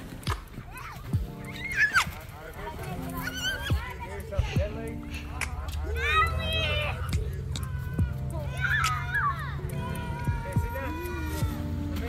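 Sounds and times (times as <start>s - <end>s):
child squealing: 0.7s - 2.2s, 3.2s - 3.9s, 6.0s - 11.7s.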